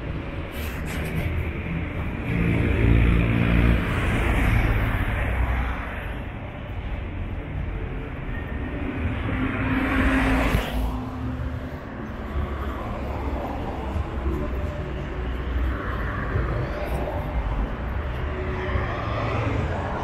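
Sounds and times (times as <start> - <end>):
minibus engine rumble: 0.0 - 20.0.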